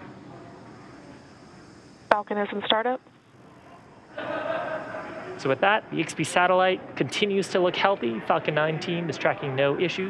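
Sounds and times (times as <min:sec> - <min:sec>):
faint hiss: 0:00.0 - 0:07.4.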